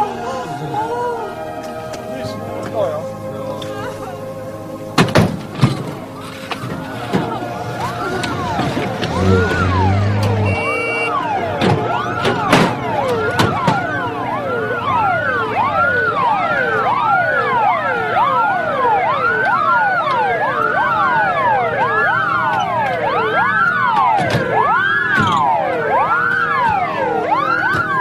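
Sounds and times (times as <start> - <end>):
emergency sirens wailing: 0.0 - 28.0.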